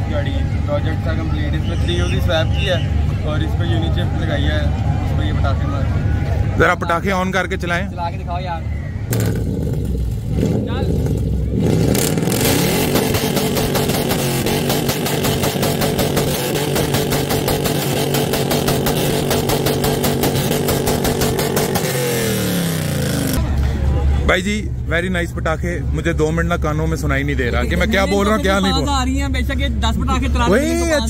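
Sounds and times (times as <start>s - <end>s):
car engine revving: 9.0s - 23.6s
exhaust popping and crackling: 9.1s - 23.4s.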